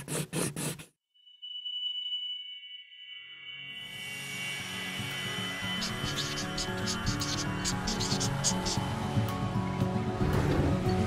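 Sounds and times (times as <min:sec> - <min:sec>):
high chime ringing: 0:01.1 - 0:08.6.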